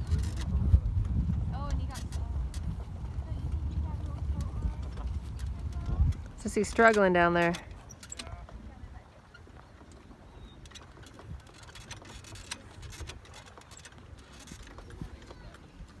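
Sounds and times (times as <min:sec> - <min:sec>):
low uneven rumble: 0:00.0 - 0:13.4.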